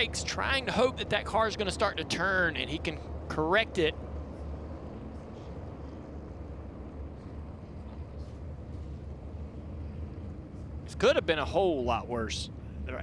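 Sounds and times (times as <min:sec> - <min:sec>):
race cars droning at speed: 0:00.0 - 0:13.0.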